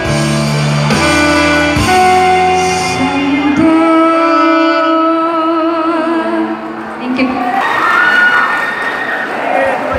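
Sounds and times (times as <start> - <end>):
song: 0.0 - 6.6
children shouting and cheering: 7.3 - 9.9.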